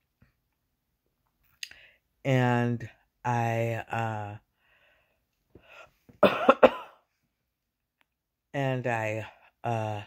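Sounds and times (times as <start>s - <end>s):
faint breath in: 4.6s - 6.1s
woman coughing: 6.2s - 7.0s.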